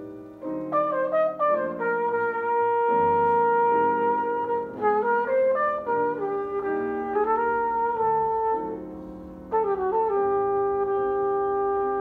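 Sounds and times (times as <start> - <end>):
flugelhorn: 0.0 - 12.0
piano chords: 0.0 - 12.0.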